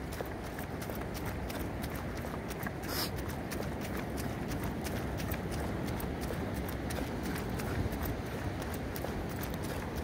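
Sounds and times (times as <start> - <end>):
low steady rumble: 0.0 - 10.0
running footsteps on wet sand: 0.0 - 10.0.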